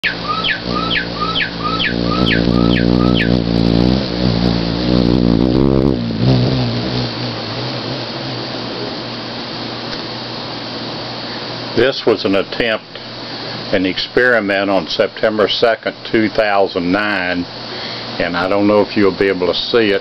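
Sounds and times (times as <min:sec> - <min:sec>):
bird singing: 0:00.0 - 0:03.8
hummingbird wings humming: 0:00.0 - 0:11.2.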